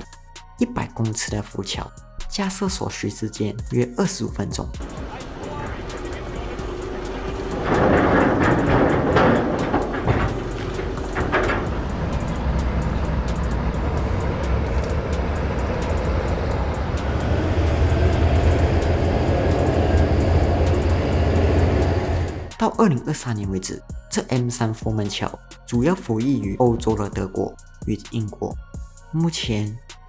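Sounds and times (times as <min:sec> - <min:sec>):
knocks: 0:04.8 - 0:16.1
low engine rumble: 0:04.8 - 0:22.6
voices: 0:04.8 - 0:22.7.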